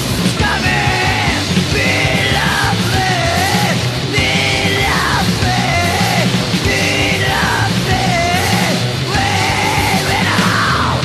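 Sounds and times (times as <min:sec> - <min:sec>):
hardcore punk band playing: 0:00.0 - 0:11.0
high yelled vocals: 0:00.2 - 0:11.0.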